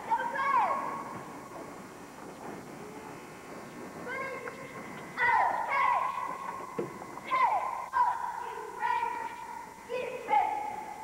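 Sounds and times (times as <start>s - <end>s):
crowd murmur: 0.8s - 7.9s.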